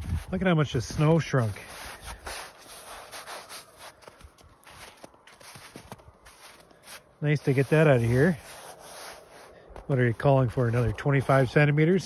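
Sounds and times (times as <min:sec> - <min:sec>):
footsteps crunching in wet snow: 0:00.0 - 0:12.0.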